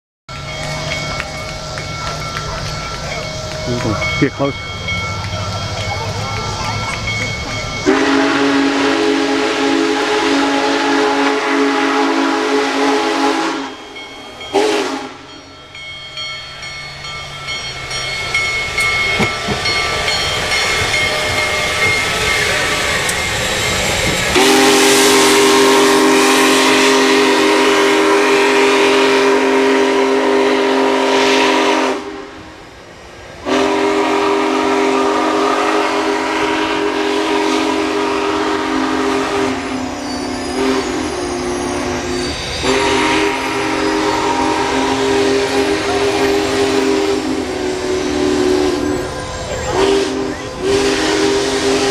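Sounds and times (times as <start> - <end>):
steam locomotive hissing and running: 0.3 - 51.9
steam whistle blasts: 7.7 - 15.4, 20.6 - 32.6, 33.4 - 51.9.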